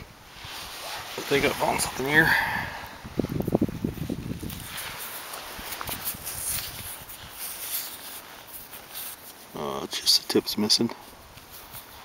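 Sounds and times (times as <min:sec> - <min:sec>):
hand rustling in dry soil: 0:00.1 - 0:12.0.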